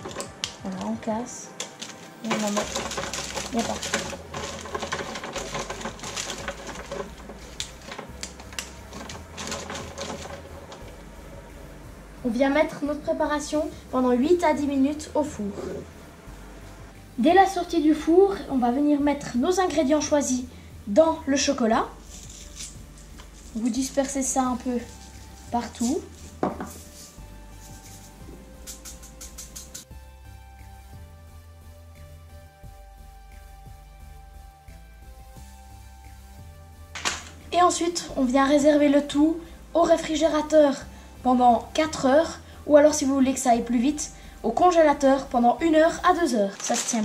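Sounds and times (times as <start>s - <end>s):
soft background music: 0.0s - 47.0s.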